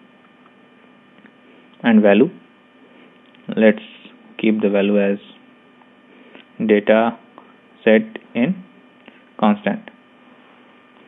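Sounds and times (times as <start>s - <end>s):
electrical hum with hiss: 0.0s - 11.0s
man speaking: 1.8s - 2.5s, 3.5s - 5.4s, 6.6s - 8.7s, 9.4s - 10.0s.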